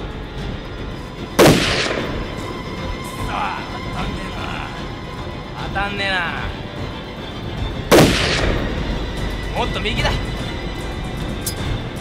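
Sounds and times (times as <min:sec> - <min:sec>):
gunshot: 0:01.4 - 0:02.4, 0:07.9 - 0:08.8.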